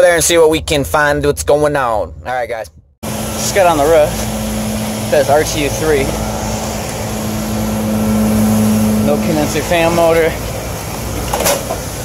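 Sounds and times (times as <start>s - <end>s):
hvac unit humming: 3.0s - 12.0s.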